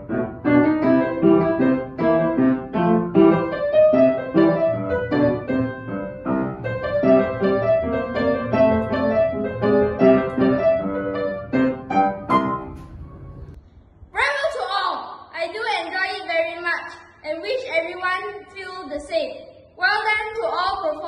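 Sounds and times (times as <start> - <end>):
upright piano quick notes: 0.0 - 13.6.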